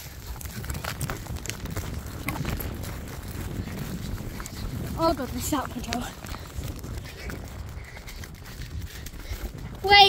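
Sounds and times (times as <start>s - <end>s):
pony hoofbeats on stubble: 0.0s - 10.0s
wind rumble on microphone: 0.0s - 10.0s.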